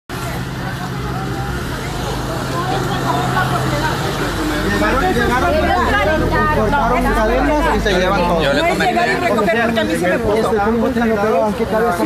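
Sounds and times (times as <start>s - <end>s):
people talking: 0.1s - 12.0s
vehicle engine humming: 0.1s - 12.0s.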